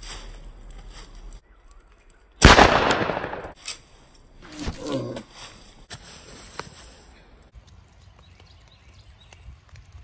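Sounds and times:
rifle shot: 0:02.4 - 0:03.6.

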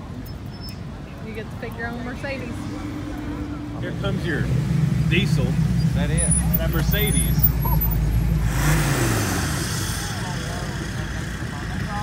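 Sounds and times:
truck engine rumble: 0:00.0 - 0:12.0
vehicles passing on road: 0:00.0 - 0:12.0.

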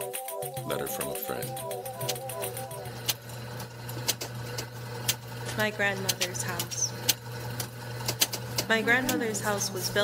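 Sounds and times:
low machine hum: 0:00.3 - 0:10.0.

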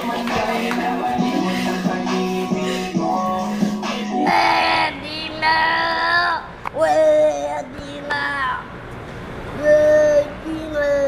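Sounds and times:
music playing: 0:00.0 - 0:04.9.

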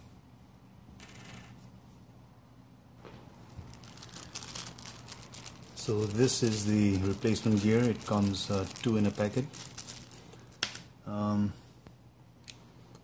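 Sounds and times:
plastic packet crinkling: 0:03.4 - 0:10.9.

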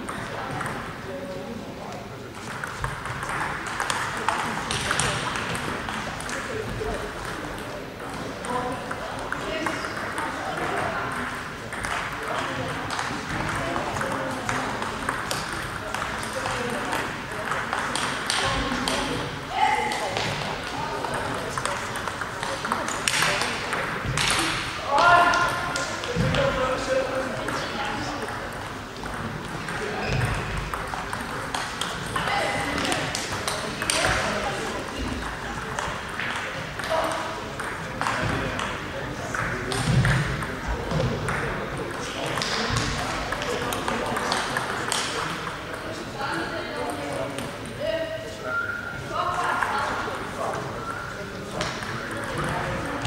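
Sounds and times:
table tennis balls clicking: 0:00.0 - 0:01.0, 0:02.4 - 0:19.2, 0:19.8 - 0:24.6, 0:27.4 - 0:45.8
voices: 0:00.0 - 0:53.0.

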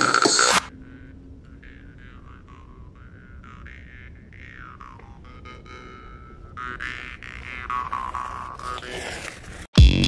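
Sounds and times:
low noisy rumble: 0:00.7 - 0:07.8.

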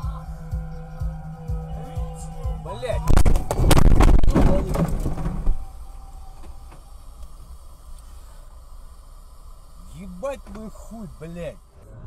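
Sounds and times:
car engine and road rumble: 0:00.0 - 0:12.0
burst of noise: 0:03.1 - 0:11.8.

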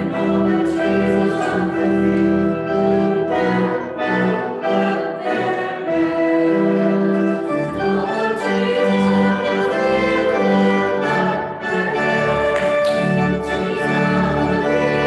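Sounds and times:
instrumental accompaniment: 0:00.0 - 0:15.0.

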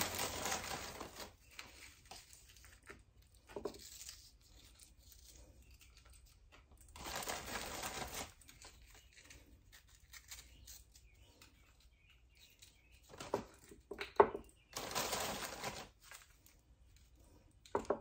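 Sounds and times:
plastic sleeve crinkling: 0:00.0 - 0:13.8, 0:14.7 - 0:17.4.

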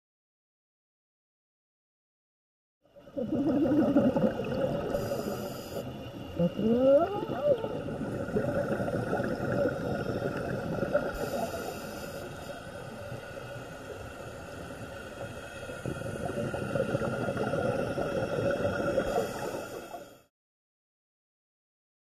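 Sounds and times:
dense underwater crackle: 0:03.0 - 0:20.3.

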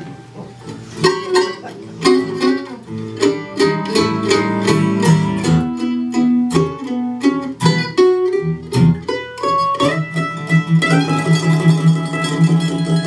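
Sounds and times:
acoustic guitar chords: 0:00.0 - 0:13.0
mandolin picked notes: 0:00.0 - 0:13.0.

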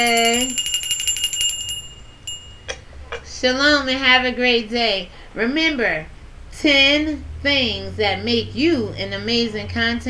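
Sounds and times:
hand bell ringing: 0:00.0 - 0:03.0.

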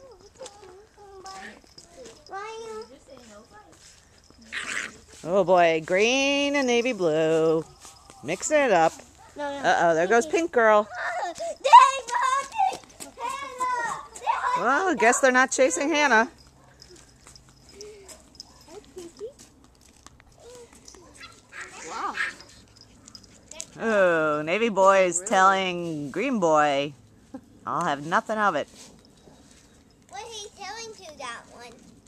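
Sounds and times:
puppies yipping: 0:00.0 - 0:05.2, 0:10.9 - 0:15.1, 0:20.3 - 0:23.7
light clicks and rustles: 0:16.3 - 0:23.8.

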